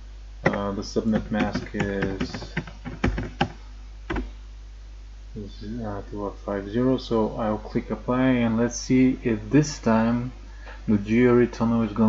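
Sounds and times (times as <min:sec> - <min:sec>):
faint steady low hum: 0:00.0 - 0:12.0
computer keyboard keystrokes: 0:00.5 - 0:04.3.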